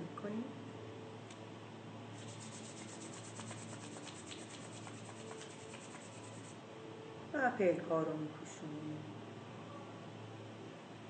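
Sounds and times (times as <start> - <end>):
palms rubbing together: 2.2 - 6.6.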